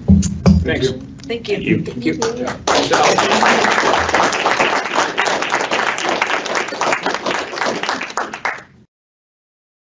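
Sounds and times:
people clapping: 2.1 - 8.8.

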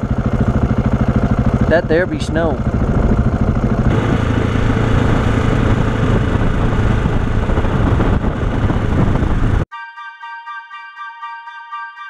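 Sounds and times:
motorcycle engine running: 0.0 - 9.7
wind and road noise: 0.0 - 9.7.

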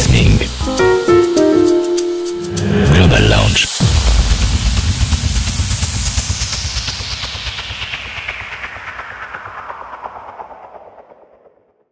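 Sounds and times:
rushing hiss: 2.4 - 8.7.

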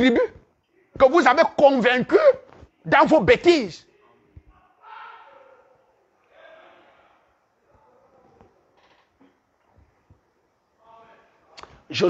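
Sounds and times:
man speaking: 0.0 - 3.9.

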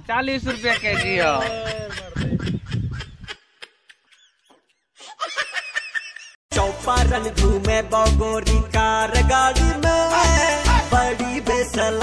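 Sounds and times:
man snickering: 0.8 - 4.2.

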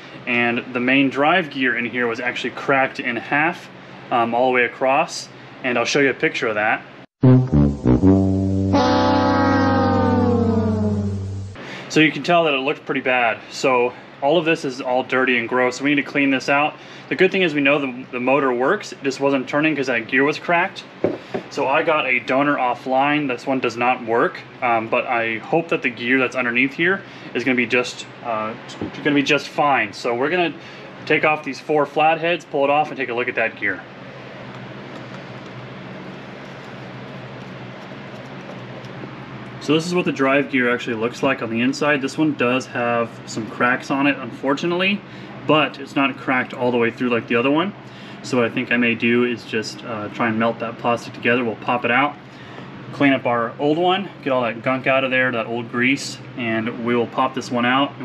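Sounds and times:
air conditioner hiss and hum: 0.0 - 7.1, 9.6 - 58.0
steady low bass tone: 7.2 - 11.6
sustained note gliding down: 7.2 - 11.6.

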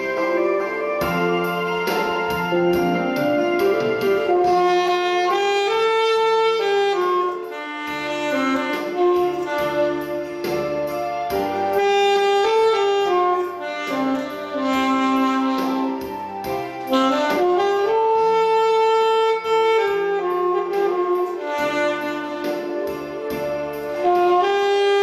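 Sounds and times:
alto saxophone melody: 0.0 - 25.0
backing track with piano and bass: 0.0 - 25.0.

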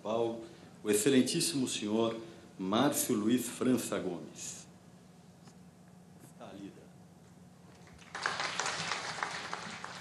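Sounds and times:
audience applause: 7.8 - 10.0.

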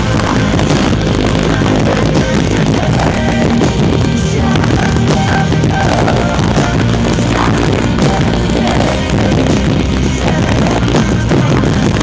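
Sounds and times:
live rock band playing: 0.0 - 12.0
person singing lead vocal: 0.0 - 12.0.

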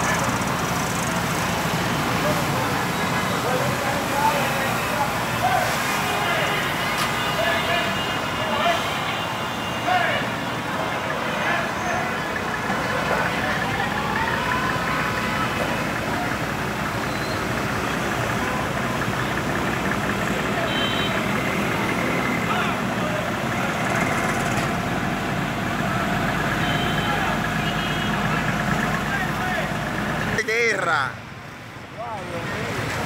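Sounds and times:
crowd talking: 0.0 - 31.2, 31.8 - 33.0
fire engine idling: 0.0 - 33.0.

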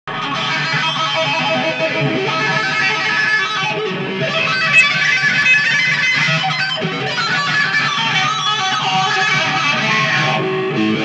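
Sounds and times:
tapped electric guitar notes: 0.1 - 11.0.

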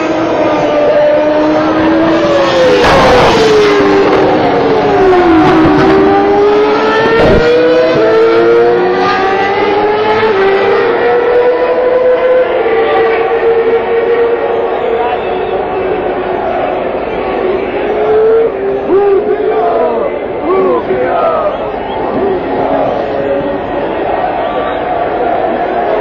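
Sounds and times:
grandstand crowd noise: 0.0 - 26.0
racing car engines: 0.0 - 26.0.

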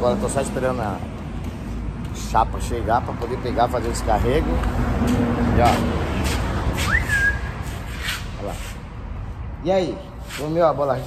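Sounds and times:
short rising whistle: 6.8 - 7.8.

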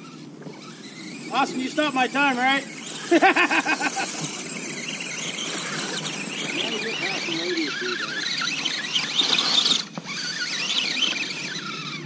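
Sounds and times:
electric motor and gears whining: 0.0 - 12.0.

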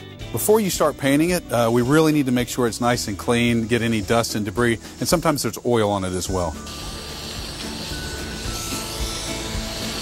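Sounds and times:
soft background music: 0.0 - 10.0
steady hiss: 1.5 - 10.0.

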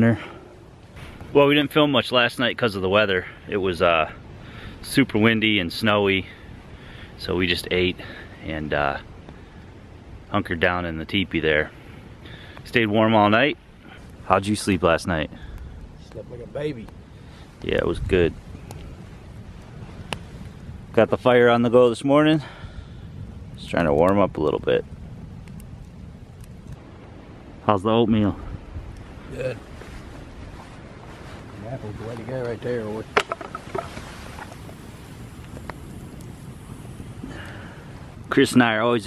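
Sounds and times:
campfire burning: 0.0 - 39.0
fire popping: 0.0 - 39.0
low outdoor hiss: 0.0 - 39.0
wind on microphone: 15.2 - 39.0.

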